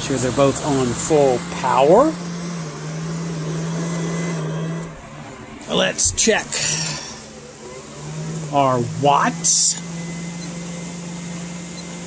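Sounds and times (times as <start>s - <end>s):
electric fans running: 0.0s - 12.0s.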